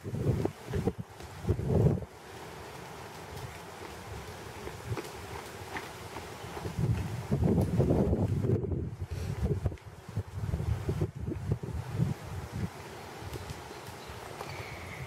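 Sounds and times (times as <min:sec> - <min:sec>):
horse hoofbeats on sand: 0:00.0 - 0:08.5
wind buffeting microphone: 0:00.0 - 0:15.0.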